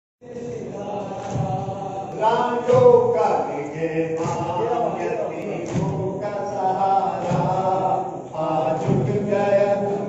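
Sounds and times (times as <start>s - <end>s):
crowd chanting a lament: 0.2s - 10.0s.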